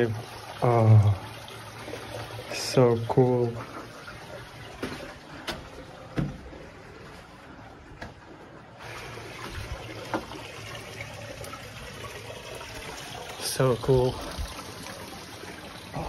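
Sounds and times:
water trickling in a cave: 0.0 - 16.0.

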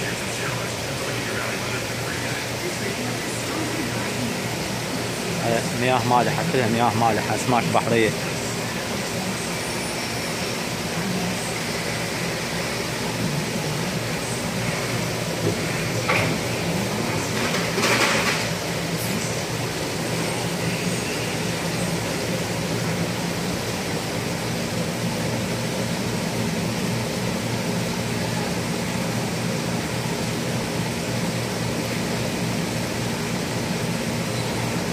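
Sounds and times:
aquarium pumps humming: 0.0 - 34.9.

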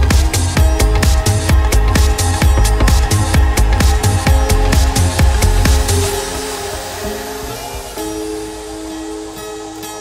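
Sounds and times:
held synth chords: 0.0 - 10.0.

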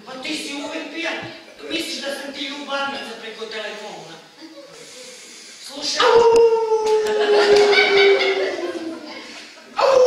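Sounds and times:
man howling: 6.0 - 9.1, 9.8 - 10.0.

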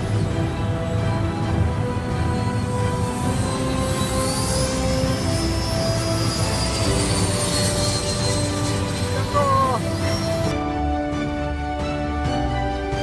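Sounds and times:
background music: 0.0 - 13.0
model jet whine: 2.0 - 10.6.

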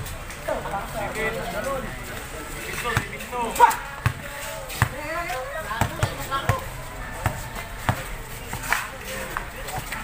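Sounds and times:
voices calling out: 0.0 - 10.0
basketball bouncing on concrete: 2.8 - 3.3, 4.0 - 8.8.

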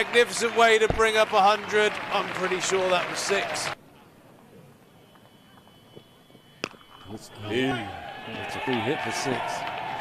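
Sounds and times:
faint crowd ambience: 0.0 - 10.0.

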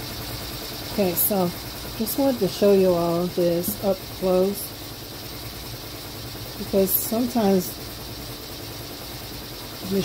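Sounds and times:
embroidery machine humming: 0.0 - 10.0.

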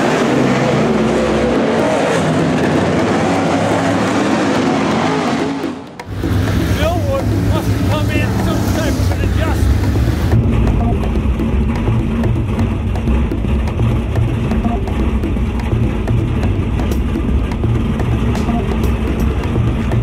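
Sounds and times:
low engine hum: 0.0 - 20.0
race car engines: 0.0 - 20.0
voices: 6.7 - 10.3.

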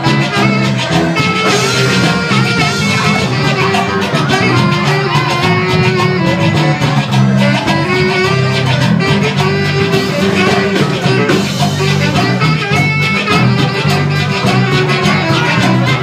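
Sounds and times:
live band playing: 0.0 - 16.0.

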